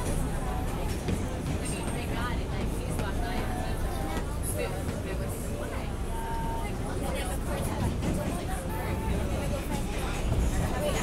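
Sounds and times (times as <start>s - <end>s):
passengers talking: 0.0s - 11.0s
subway train rumble: 0.0s - 11.0s.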